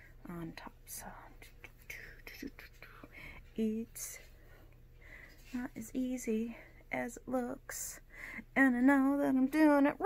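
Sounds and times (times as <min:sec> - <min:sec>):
person whispering: 0:00.3 - 0:04.2.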